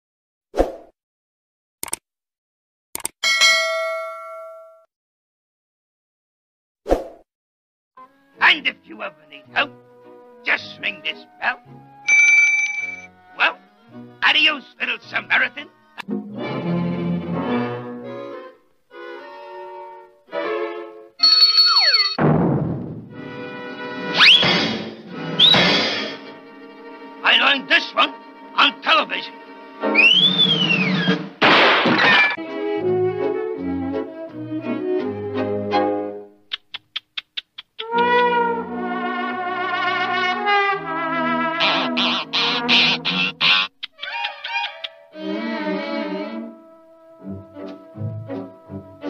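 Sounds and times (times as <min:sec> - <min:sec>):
notification bell ding: 0:03.2 - 0:04.9, 0:12.1 - 0:13.1
loud crash: 0:22.2 - 0:23.2, 0:31.4 - 0:32.4
orchestral cartoon music with timpani: 0:22.3 - 0:29.5, 0:37.8 - 0:43.7, 0:45.1 - 0:49.0.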